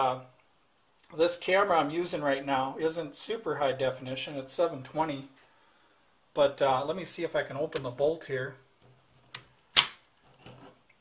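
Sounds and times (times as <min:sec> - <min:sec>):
air rifle bolt clicking: 0:09.4 - 0:10.0.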